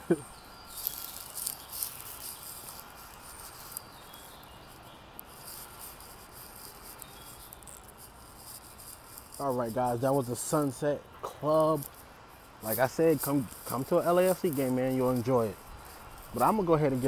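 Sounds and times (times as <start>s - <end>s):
steady low hiss: 0.0s - 17.0s.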